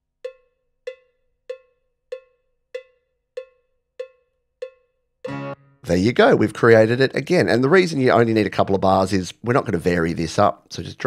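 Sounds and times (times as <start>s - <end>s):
cowbell metronome strikes: 0.3s - 5.6s.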